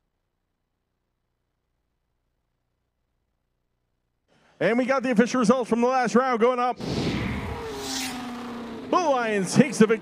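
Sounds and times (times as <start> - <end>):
low engine tone: 6.8 - 10.0
race car whoosh: 6.8 - 10.0.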